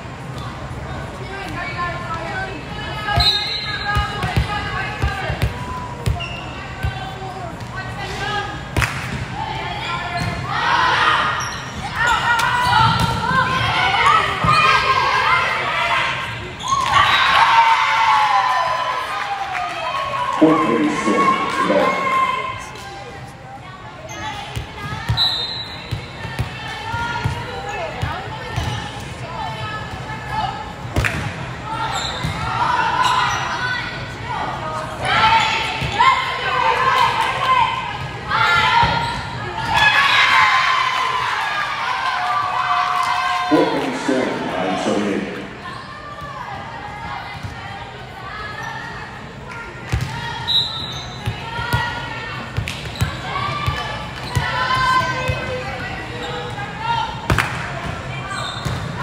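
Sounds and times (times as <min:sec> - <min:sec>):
players calling out: 0:20.1 - 0:22.8.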